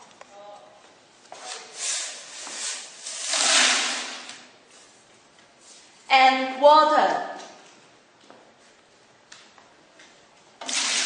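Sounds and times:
water pouring into plastic bucket: 3.1s - 4.4s, 10.6s - 11.0s.

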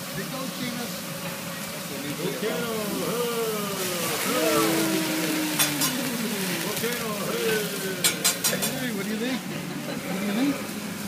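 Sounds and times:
food sizzling on griddle: 0.0s - 11.0s
voices: 0.1s - 11.0s.

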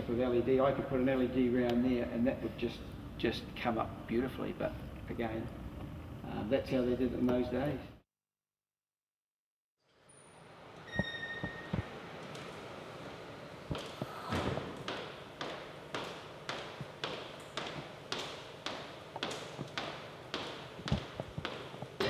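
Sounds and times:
footsteps on tiled floor: 13.6s - 22.0s.

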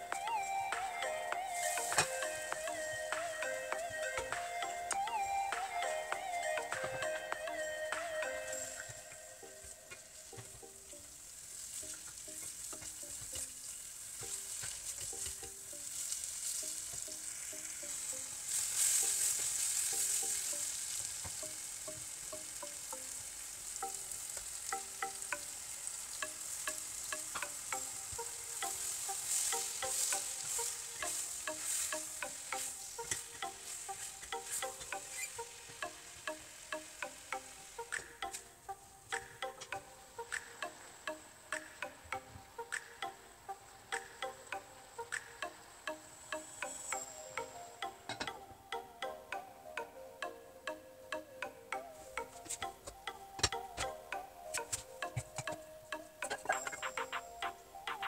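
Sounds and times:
chicken sizzling in a saucepan: 1.5s - 3.8s, 8.4s - 39.3s.

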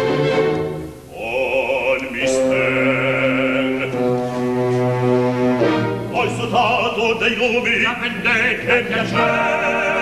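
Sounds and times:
opera singing: 1.1s - 4.4s, 6.1s - 10.0s.

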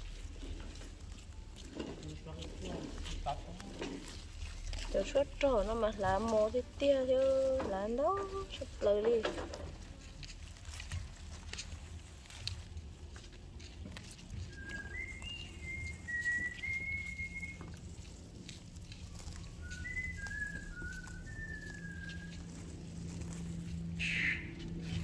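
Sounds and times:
leaves rustling and snapping: 0.0s - 25.0s
person whistling a tune: 14.5s - 17.6s, 19.6s - 22.4s.

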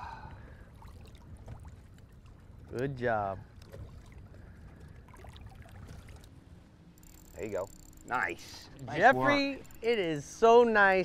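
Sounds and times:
water lapping around boat: 0.0s - 10.4s.

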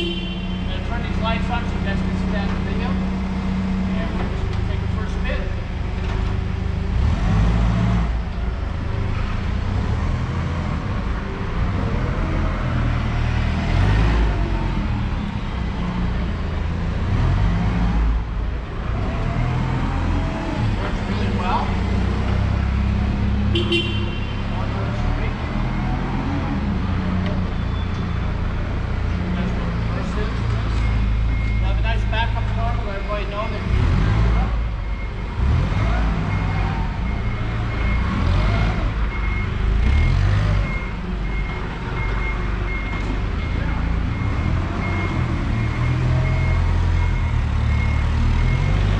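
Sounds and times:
forklift engine running: 33.6s - 48.9s.

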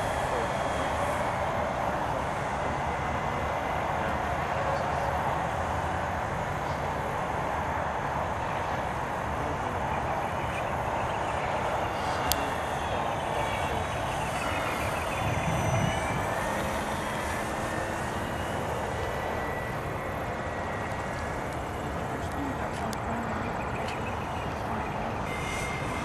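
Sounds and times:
model aircraft engine whine: 0.0s - 26.0s.

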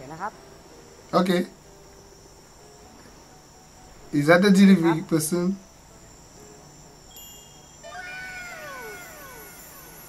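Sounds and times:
brief high tone: 7.2s - 10.0s
tones gliding downward in pitch: 7.8s - 10.0s.

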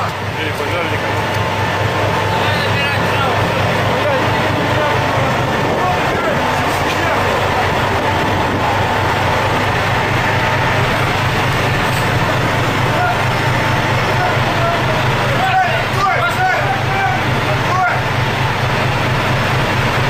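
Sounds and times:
faint voices: 0.0s - 18.7s
boat engine droning: 0.0s - 20.0s.

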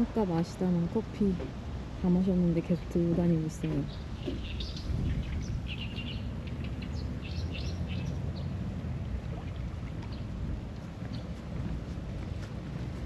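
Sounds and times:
small birds chirping: 3.2s - 8.6s.

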